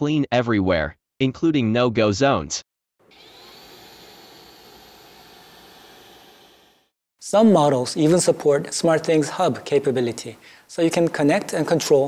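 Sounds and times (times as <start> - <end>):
robot vacuum cleaner whirring: 3.1 - 6.9.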